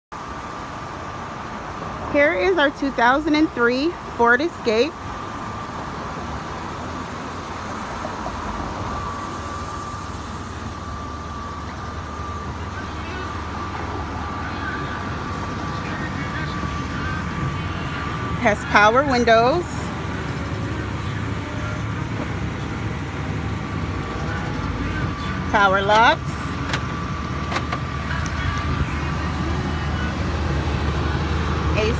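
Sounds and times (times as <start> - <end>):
car engine idling: 0.1 - 31.9
traffic rumble and hiss: 0.1 - 31.9
faint steady whine: 0.2 - 31.9.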